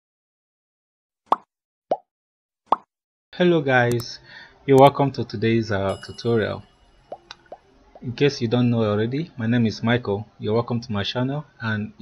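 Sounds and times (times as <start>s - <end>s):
cartoon pop sound effects: 1.3s - 2.1s, 2.7s - 2.9s.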